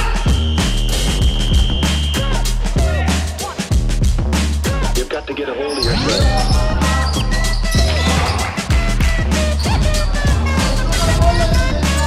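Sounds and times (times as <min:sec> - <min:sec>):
background music with singing: 0:00.0 - 0:12.0.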